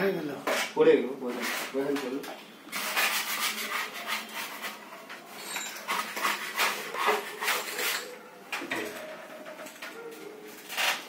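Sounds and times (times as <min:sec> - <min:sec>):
rasping scrape on tiles: 0:00.4 - 0:02.1, 0:02.7 - 0:08.3, 0:10.6 - 0:11.0.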